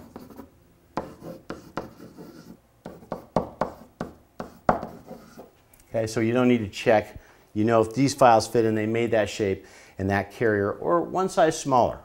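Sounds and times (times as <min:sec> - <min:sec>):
marker writing on a whiteboard: 0:00.0 - 0:05.6.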